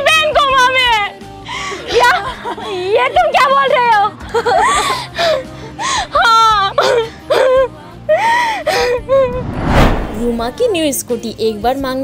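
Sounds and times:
background music: 0:00.0 - 0:12.0
woman crying and wailing: 0:01.7 - 0:09.5.

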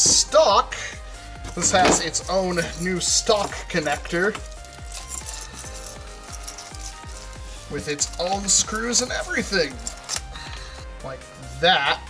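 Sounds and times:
synth music with steady beat: 0:00.0 - 0:12.0.

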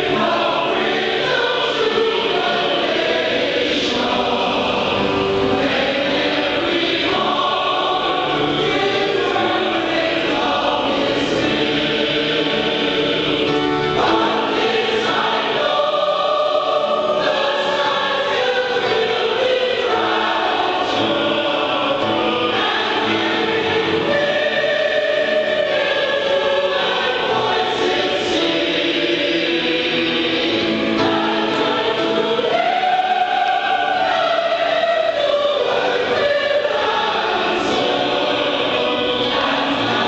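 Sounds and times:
mixed choir singing a hymn: 0:00.0 - 0:40.0.

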